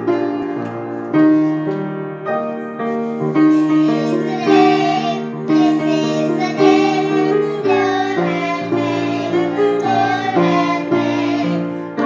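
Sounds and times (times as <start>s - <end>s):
piano accompaniment: 0.0s - 12.0s
girls singing: 3.4s - 12.0s.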